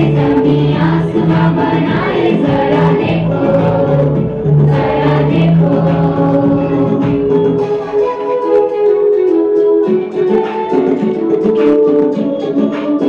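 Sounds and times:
choir singing worship song: 0:00.0 - 0:07.9
repeating bass pattern: 0:00.0 - 0:08.1
instrumental backing: 0:00.0 - 0:13.0.

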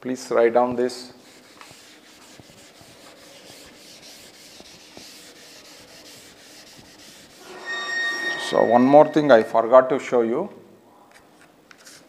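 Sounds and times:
duster scrubbing chalkboard: 0:01.0 - 0:07.4
short high squeal: 0:07.4 - 0:09.7.

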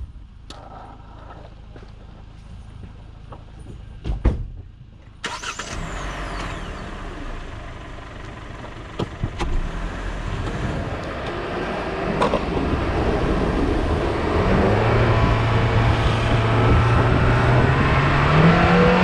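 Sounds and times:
wheels rolling on asphalt: 0:00.5 - 0:04.0
wind rush: 0:12.0 - 0:19.0.

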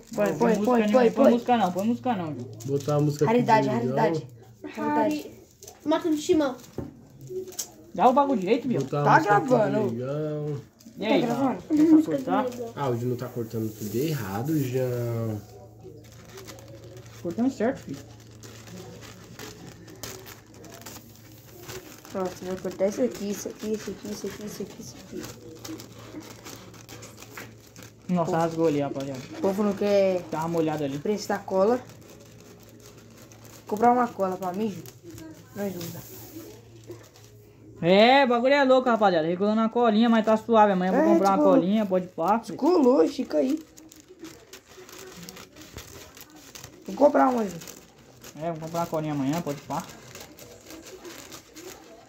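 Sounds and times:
scissors snipping paper: 0:00.0 - 0:37.4, 0:40.1 - 0:52.0
paper rustling: 0:00.0 - 0:52.0.

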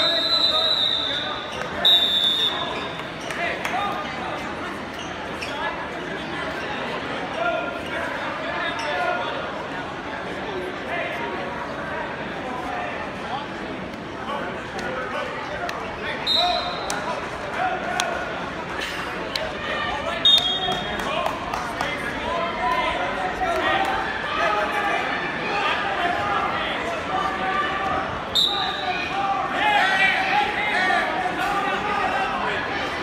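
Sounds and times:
referee's whistle blast: 0:00.0 - 0:02.9, 0:16.2 - 0:16.9, 0:28.3 - 0:29.1
spectators' voices: 0:00.0 - 0:33.0.

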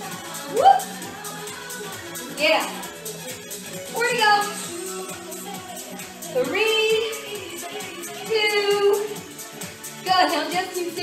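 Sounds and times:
person singing: 0:00.0 - 0:09.3
workout music with steady beat: 0:00.0 - 0:11.0.

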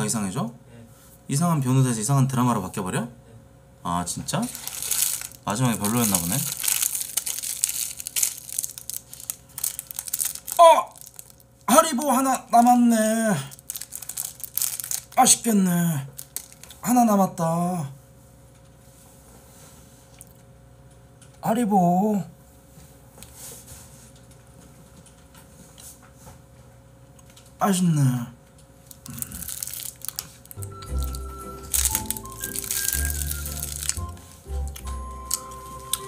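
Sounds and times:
low room hum: 0:00.0 - 0:36.0
plastic candy bag crinkling: 0:04.4 - 0:16.8, 0:28.8 - 0:36.0
person chewing: 0:04.5 - 0:11.5, 0:13.6 - 0:15.2, 0:28.8 - 0:36.0.

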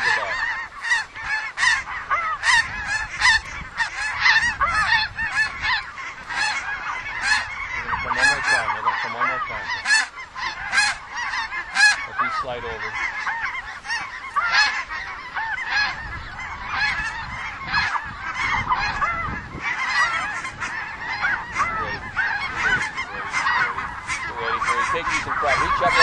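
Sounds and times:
geese honking: 0:00.0 - 0:26.0.

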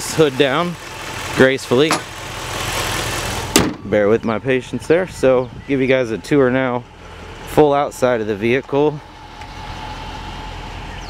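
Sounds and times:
car hood slamming shut: 0:01.9 - 0:02.2, 0:03.5 - 0:03.9.

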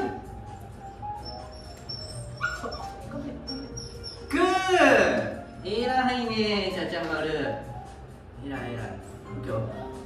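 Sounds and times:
background music: 0:00.0 - 0:10.0
dog whining: 0:00.4 - 0:04.5.

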